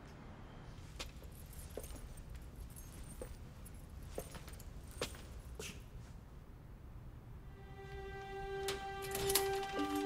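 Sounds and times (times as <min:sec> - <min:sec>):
light jingles: 0:01.0 - 0:05.8.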